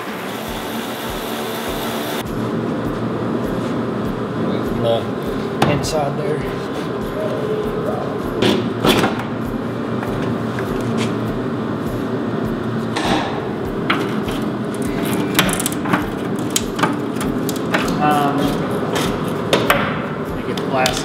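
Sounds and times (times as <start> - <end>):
background hum: 0.0 - 21.0.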